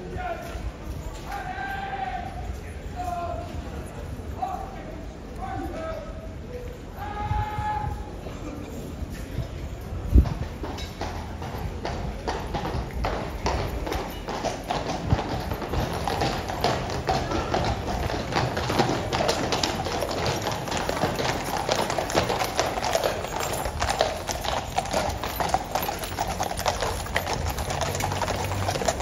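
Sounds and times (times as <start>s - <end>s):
horse hooves clip-clopping on stone: 9.1s - 29.0s.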